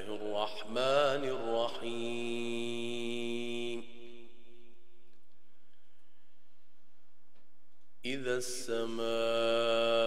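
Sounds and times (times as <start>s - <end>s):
man chanting: 0.0s - 4.5s, 8.0s - 10.0s.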